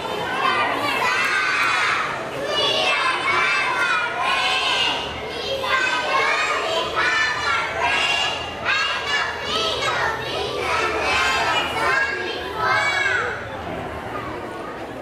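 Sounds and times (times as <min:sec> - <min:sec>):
children singing in unison: 0:00.0 - 0:13.3.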